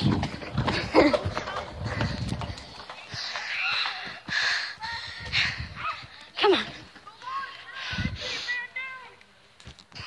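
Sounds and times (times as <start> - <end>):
running footfalls: 0.0 - 8.3.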